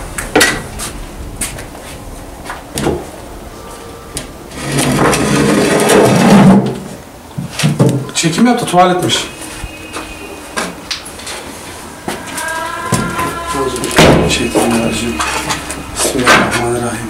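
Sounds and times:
old door scraping open: 2.8 - 7.0.

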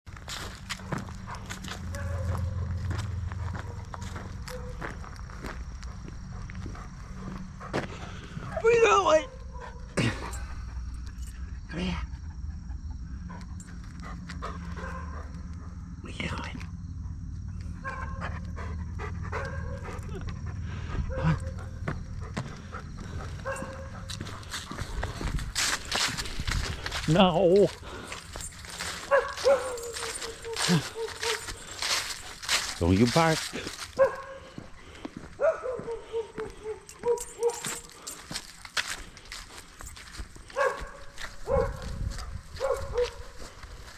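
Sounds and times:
footsteps on dry leaves: 0.1 - 7.9, 22.5 - 43.9
dog yelping: 1.6 - 2.8, 17.8 - 24.5, 28.7 - 32.3, 34.0 - 34.4, 35.4 - 37.9.

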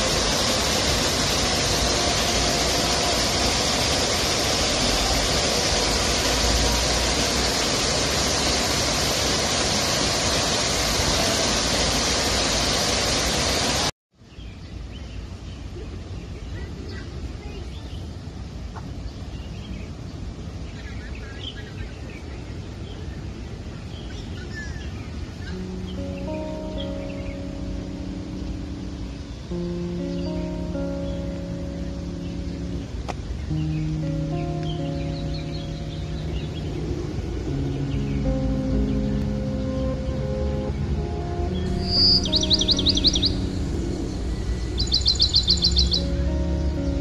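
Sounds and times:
slow music of held chords: 0.0 - 11.3, 25.5 - 47.0
low outdoor rumble: 34.8 - 47.0
faint bird chirps: 41.6 - 46.3.

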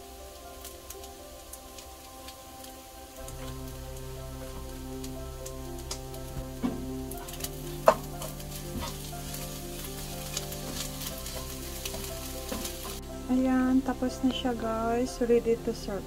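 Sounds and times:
rice sizzling in frying pan: 0.0 - 16.0
soft background music: 0.0 - 16.0.

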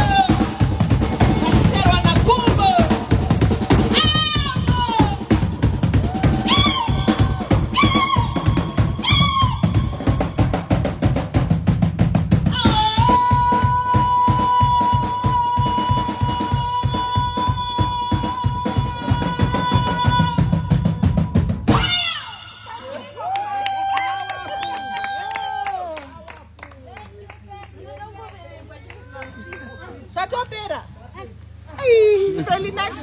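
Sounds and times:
drum kit playing busy beat: 0.0 - 22.1
woman singing into microphone: 12.5 - 20.8.

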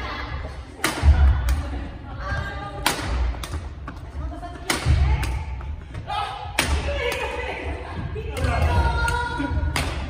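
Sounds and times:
rackets striking shuttlecocks: 0.7 - 1.8, 2.7 - 7.4.

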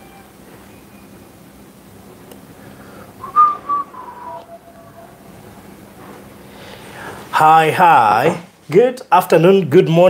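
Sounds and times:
person whistling: 3.2 - 5.3.

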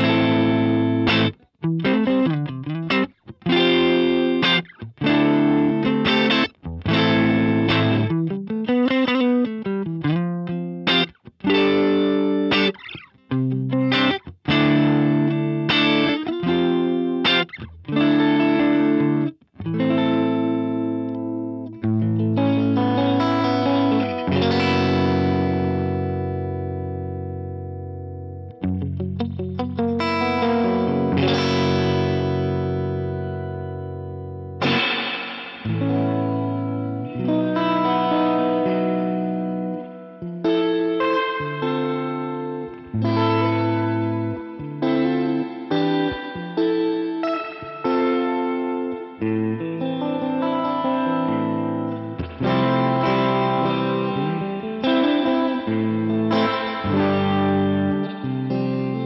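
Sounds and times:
clean electric guitar: 0.0 - 59.0.

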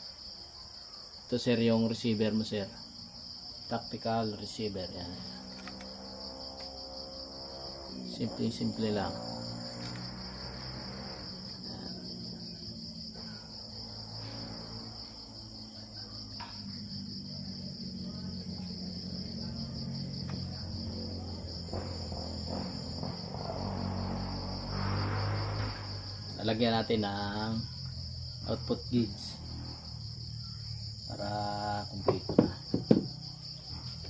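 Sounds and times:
crickets chirping: 0.0 - 34.0.

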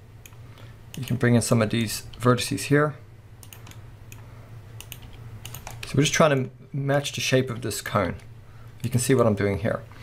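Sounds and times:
low steady hum: 0.0 - 10.0
keyboard and mouse clicks: 3.4 - 4.2, 4.8 - 6.0.

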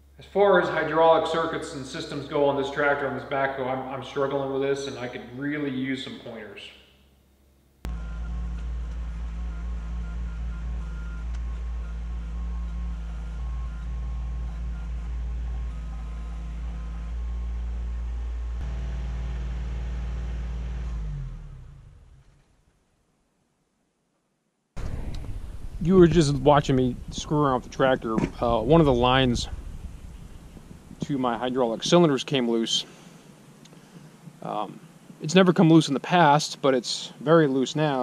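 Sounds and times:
tractor diesel engine running: 7.9 - 22.5, 24.8 - 32.3.

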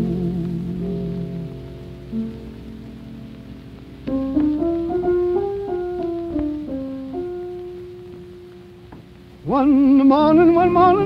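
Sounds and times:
old recording hiss and crackle: 0.0 - 11.0.

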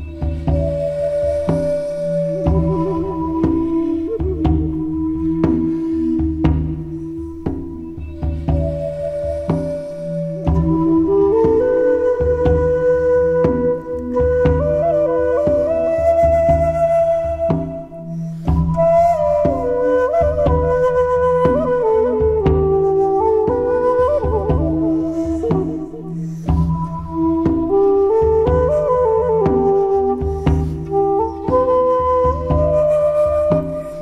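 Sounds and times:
bamboo flute melody: 0.0 - 34.0
soft regular beat: 1.2 - 12.8, 15.6 - 34.0.

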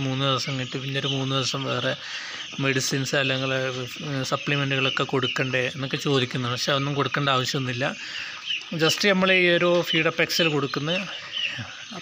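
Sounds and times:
chicks peeping: 0.0 - 12.0
man talking: 0.0 - 12.0.

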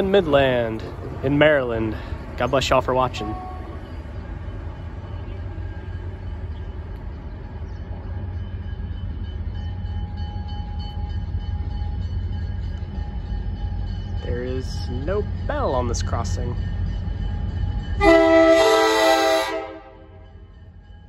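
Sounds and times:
diesel locomotive engine rumble: 0.0 - 21.0.

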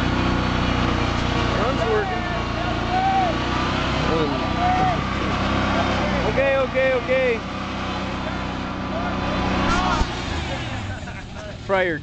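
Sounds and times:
truck engine running under load: 0.0 - 12.0.

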